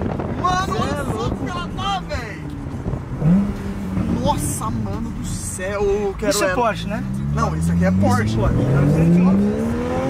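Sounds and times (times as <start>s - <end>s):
car engine accelerating: 0.0s - 10.0s.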